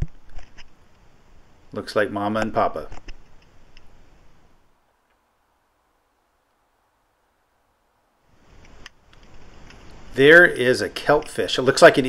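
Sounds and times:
faint microphone hiss: 0.0 - 12.0
soft clicks: 8.5 - 10.0.

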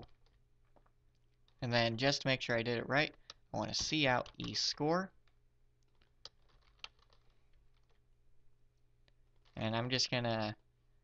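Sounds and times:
keyboard typing: 3.0 - 8.1.

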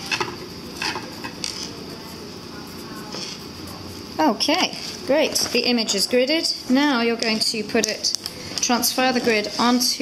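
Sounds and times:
pencil scratching on paper: 0.0 - 6.5, 9.0 - 10.0.

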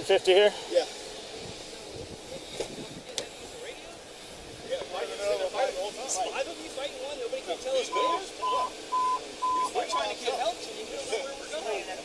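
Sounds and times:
indistinct voices talking: 0.0 - 12.0
outdoor background hiss: 0.0 - 12.0.

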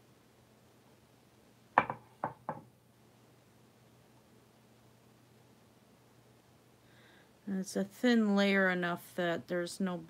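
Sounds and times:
quick knocks: 1.8 - 2.7.

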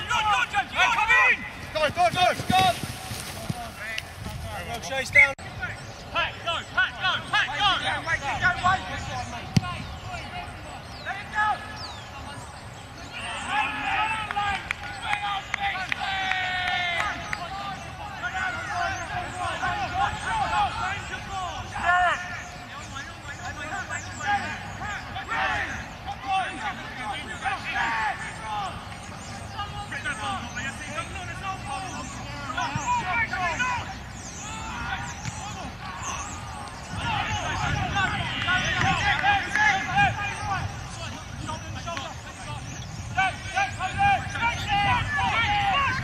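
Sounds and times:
distant players shouting: 0.0 - 12.4, 13.0 - 46.0
people shouting: 24.2 - 28.8, 31.4 - 40.6, 43.2 - 46.0.

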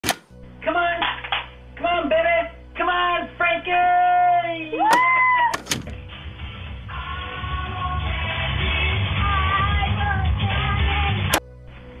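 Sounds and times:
soft music: 0.0 - 12.0
small child squealing: 4.8 - 5.6.

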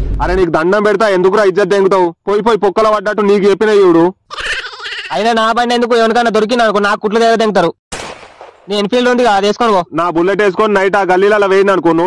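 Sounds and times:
person talking: 8.7 - 12.0.

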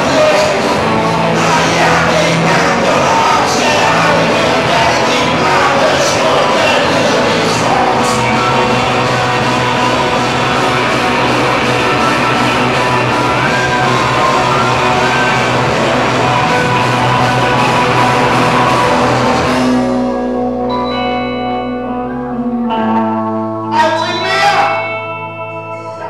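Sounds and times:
loud electric guitar solo: 0.0 - 26.0.

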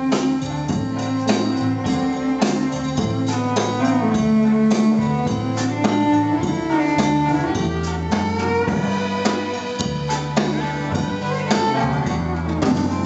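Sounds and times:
country band playing: 0.0 - 13.0
fiddle melody: 0.0 - 13.0.

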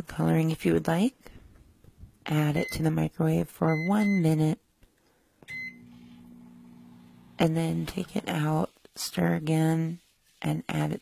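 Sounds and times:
microwave button click and beep: 5.5 - 5.9
microwave humming: 5.5 - 7.5.

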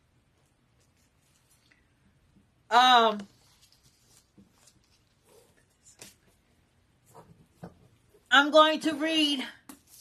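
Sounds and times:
paper rustling: 3.2 - 6.4.

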